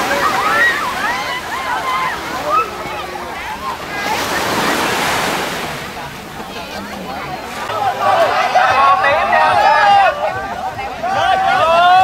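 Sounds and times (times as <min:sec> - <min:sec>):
small surf washing up sand: 0:00.0 - 0:08.7.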